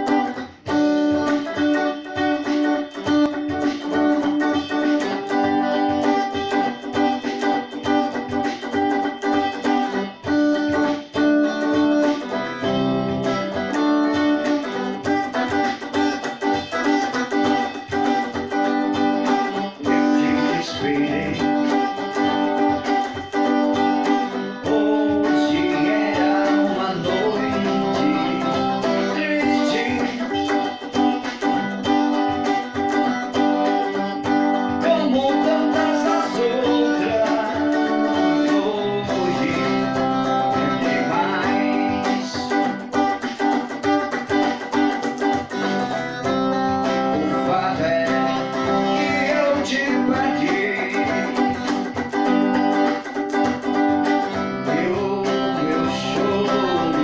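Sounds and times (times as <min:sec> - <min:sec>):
electric guitar chords: 0:00.0 - 0:57.0
man singing into microphone: 0:19.7 - 0:22.1, 0:24.5 - 0:31.0, 0:34.8 - 0:42.8, 0:46.9 - 0:51.9, 0:54.2 - 0:57.0.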